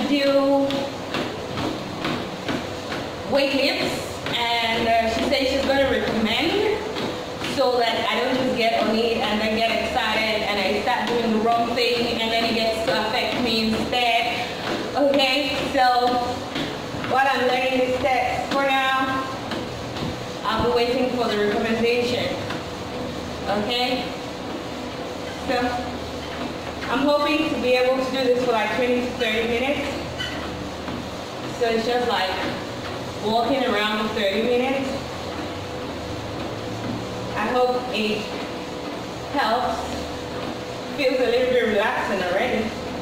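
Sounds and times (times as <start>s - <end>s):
footsteps on treadmill belt: 0.0s - 43.0s.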